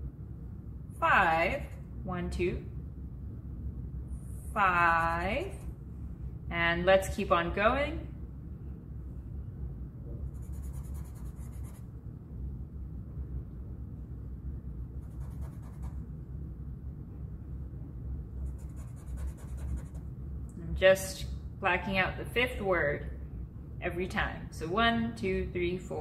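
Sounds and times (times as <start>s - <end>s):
steady low hum: 0.0s - 26.0s
marker scribbling on paper: 10.4s - 11.8s, 15.0s - 16.0s, 18.5s - 20.0s.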